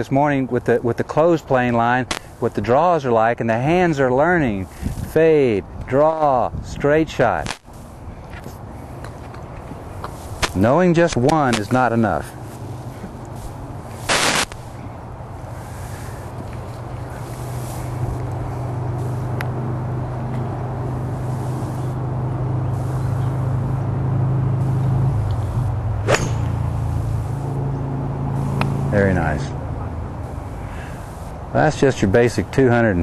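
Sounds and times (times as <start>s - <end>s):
low engine drone: 7.7s - 33.0s
loud rush of noise: 12.4s - 14.8s, 20.8s - 31.5s
golf club striking ball: 26.0s - 27.0s.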